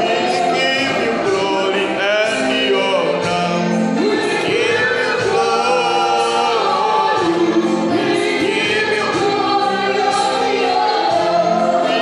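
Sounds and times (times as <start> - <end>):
man singing unaccompanied: 0.0 - 9.4.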